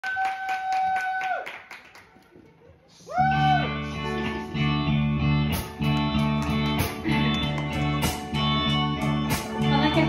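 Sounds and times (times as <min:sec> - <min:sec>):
rhythmic hand clapping: 0:05.5 - 0:10.0.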